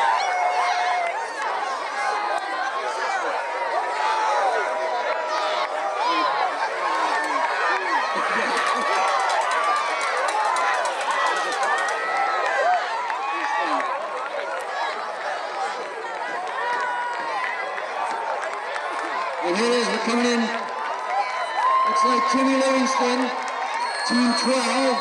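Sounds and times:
crowd talking and calling out: 0.0 - 25.0.

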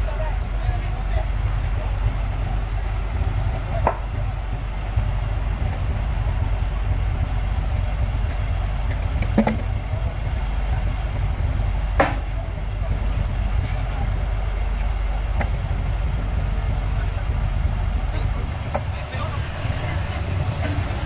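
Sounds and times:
diesel engine idling: 0.0 - 21.0.

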